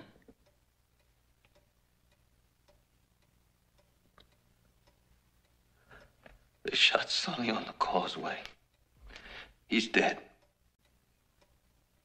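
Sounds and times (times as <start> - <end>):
clock ticking faintly: 0.0 - 12.0.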